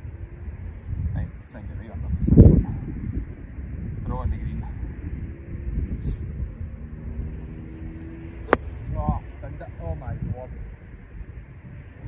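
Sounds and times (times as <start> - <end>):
wind rumble on microphone: 0.0 - 12.0
golf club striking ball: 8.4 - 9.0.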